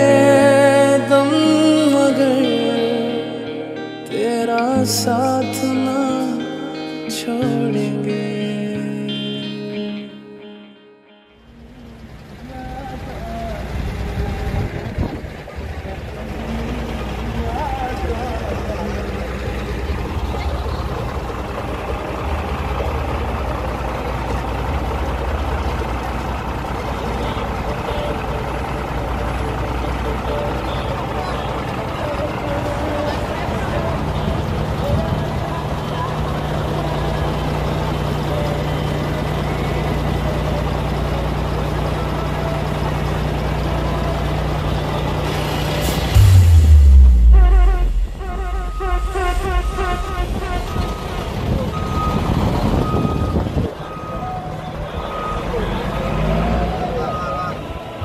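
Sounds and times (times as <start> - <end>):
truck engines idling: 0.0 - 3.5, 11.2 - 58.0.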